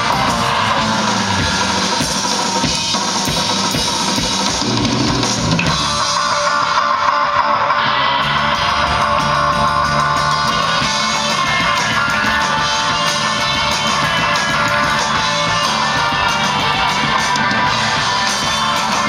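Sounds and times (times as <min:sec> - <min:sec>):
drum kit playing: 0:00.0 - 0:19.0
electric bass: 0:00.0 - 0:19.0
electric guitars: 0:00.0 - 0:19.0.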